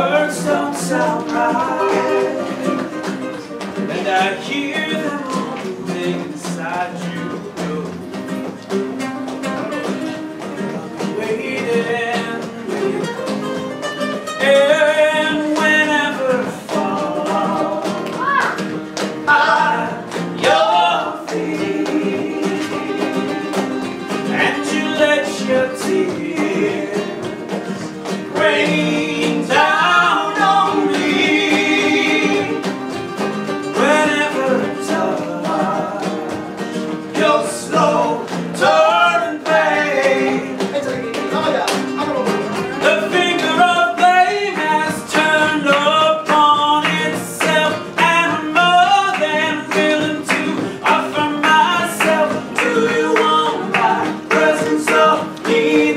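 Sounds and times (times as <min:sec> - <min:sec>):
man singing: 0:00.0 - 0:08.1, 0:09.6 - 0:13.2, 0:14.3 - 0:18.6, 0:19.2 - 0:41.0, 0:42.2 - 0:55.9
acoustic guitars playing: 0:00.0 - 0:55.9
rhythmic hand clapping: 0:00.0 - 0:55.9.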